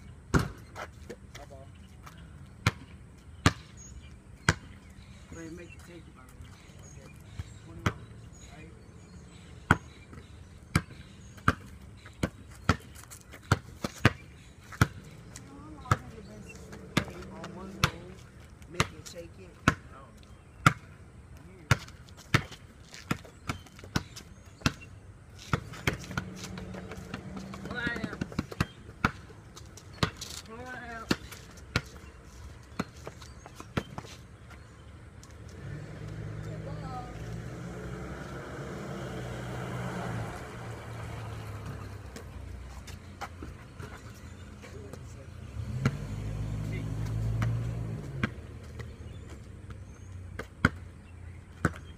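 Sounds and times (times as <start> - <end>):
basketball bouncing on concrete: 0.3 - 0.9, 2.0 - 3.8, 4.4 - 4.8, 7.3 - 8.1, 9.6 - 19.9, 20.6 - 21.0, 21.6 - 32.1, 32.7 - 34.1, 47.3 - 51.9
vehicle engine rumble: 22.5 - 51.9.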